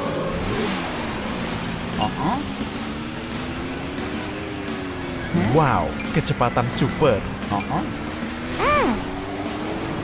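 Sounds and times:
cartoon car engine revving: 6.7 - 10.0.

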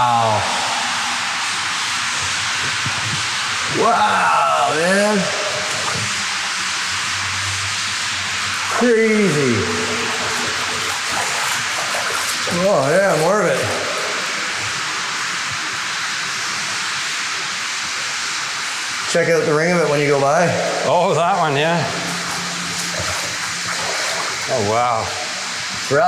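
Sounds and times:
low steady hum: 0.0 - 16.8, 18.5 - 26.0
running water rushing in tunnel: 0.0 - 26.0.

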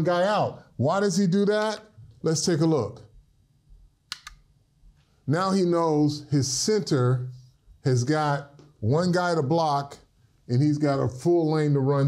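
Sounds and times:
short sharp clicks: 4.1 - 4.5.

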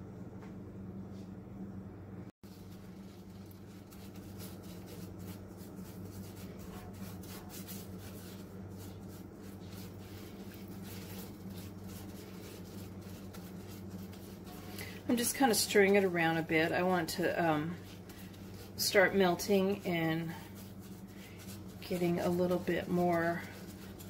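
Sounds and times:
low steady hum: 0.0 - 24.0
spatula scraping a skillet: 4.0 - 24.0.

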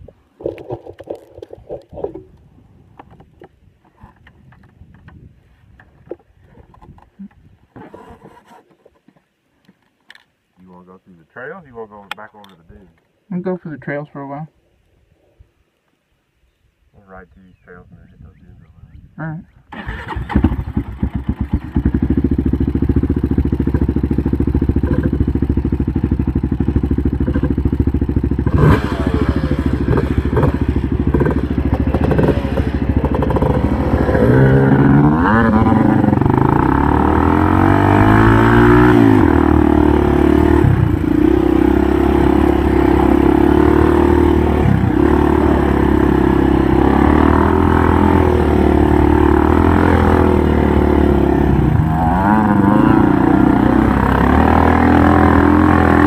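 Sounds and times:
atv engine revving: 19.7 - 56.0.

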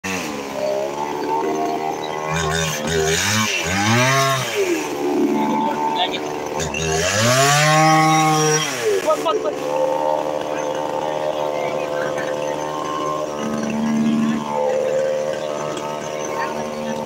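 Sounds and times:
chainsaw engine revving: 0.0 - 17.0.

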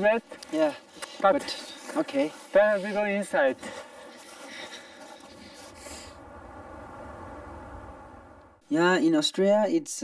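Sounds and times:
wind rumbling on microphone: 5.1 - 8.6.

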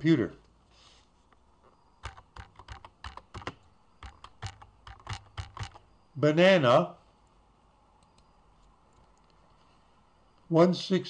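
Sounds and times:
keyboard typing: 2.0 - 5.9.

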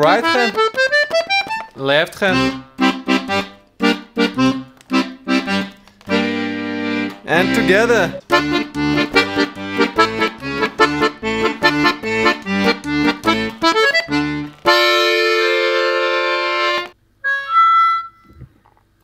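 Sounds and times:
button accordion chords: 0.0 - 18.2.

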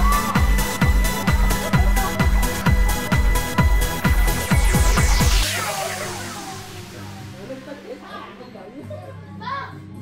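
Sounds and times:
adults and children chattering: 0.0 - 10.0
background music: 0.0 - 10.0.

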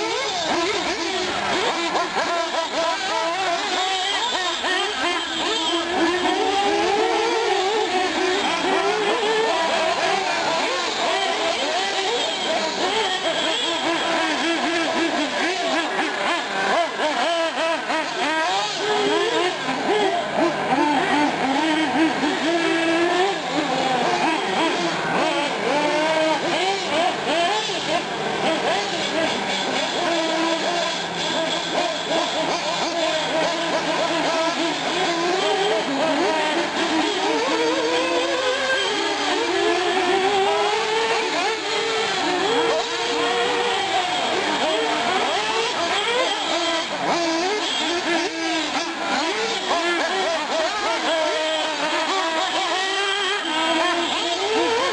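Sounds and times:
small engines whining: 0.0 - 54.9.

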